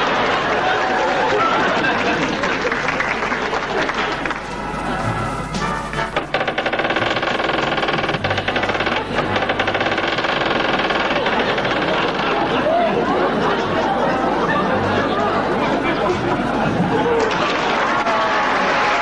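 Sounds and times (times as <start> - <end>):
audience chatter and shouts: 0.0 - 6.3, 8.1 - 19.0
band music: 3.7 - 6.3.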